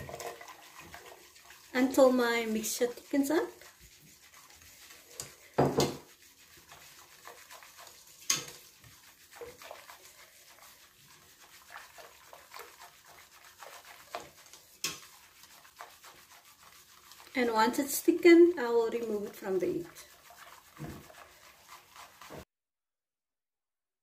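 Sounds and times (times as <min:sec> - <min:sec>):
whisk knocking against pot: 0:00.0 - 0:22.4
whisk scraping in metal pot: 0:00.0 - 0:22.5.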